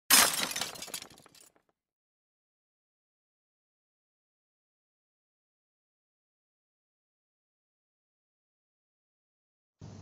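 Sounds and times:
glass shattering: 0.1s - 1.6s.

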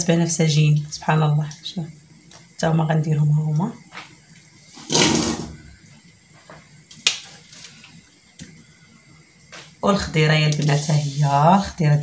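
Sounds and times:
object scraping on counter: 4.7s - 5.6s.

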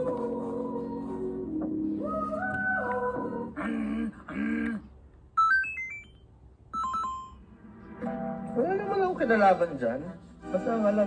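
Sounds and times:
short electronic beeps: 5.4s - 7.4s.

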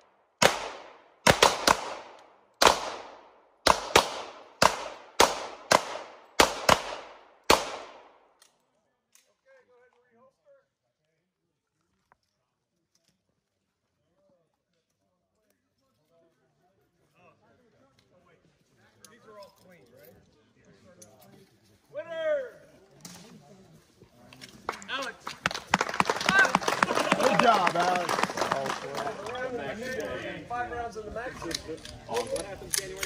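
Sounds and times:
men talking and laughing: 25.8s - 33.0s.

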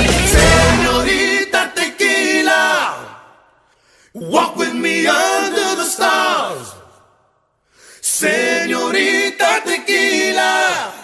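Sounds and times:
voices singing in harmony: 0.0s - 3.4s, 4.2s - 7.1s, 8.0s - 11.0s.

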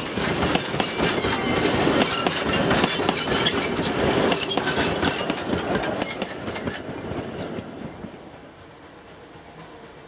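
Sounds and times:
wheels clicking over rail joints: 0.0s - 8.0s
train carriages rolling past: 0.0s - 10.0s.

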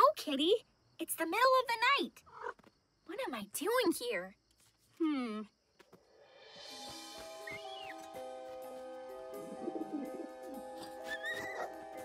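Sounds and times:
soft background music: 6.5s - 12.0s
cartoon bird cooing: 9.4s - 11.7s.

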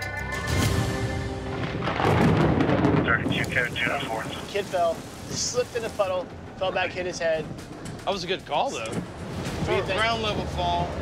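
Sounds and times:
background music: 0.0s - 11.0s
thunder rumbling: 0.6s - 11.0s.

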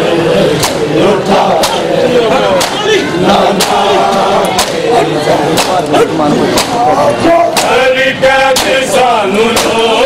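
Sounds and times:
men chanting together: 0.0s - 10.0s
palms slapping bare chests: 0.6s - 0.9s, 1.5s - 1.9s, 2.6s - 2.9s, 3.5s - 4.9s, 5.5s - 6.9s, 7.5s - 7.9s, 8.5s - 10.0s.

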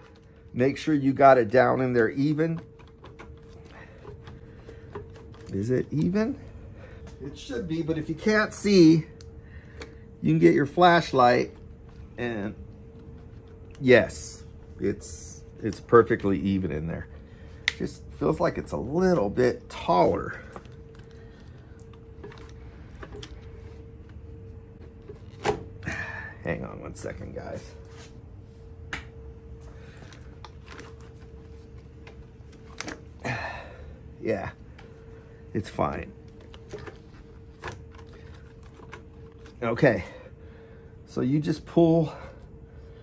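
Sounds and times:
faint steady hum: 0.0s - 43.0s.

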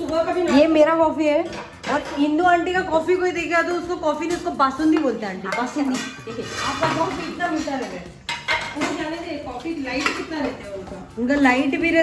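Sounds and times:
steel utensils clinking: 0.0s - 11.8s.

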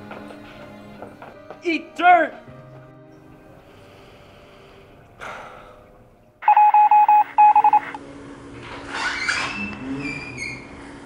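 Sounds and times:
short electronic beeps: 6.4s - 8.0s.

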